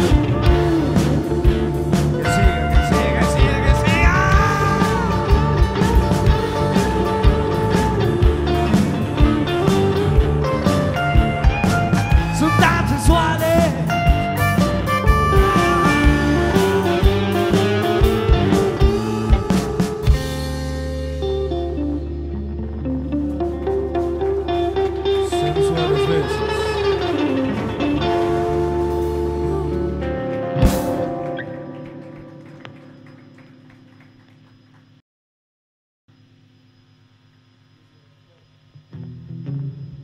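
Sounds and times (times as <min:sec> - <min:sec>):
live rock band playing: 0:00.0 - 0:33.2
electric guitar line: 0:00.0 - 0:34.4
guitar chord ringing out: 0:14.3 - 0:31.8.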